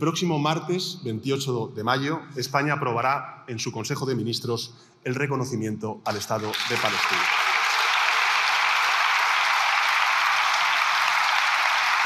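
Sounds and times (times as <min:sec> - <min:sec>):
crowd clapping in a large chamber: 0:06.1 - 0:12.0.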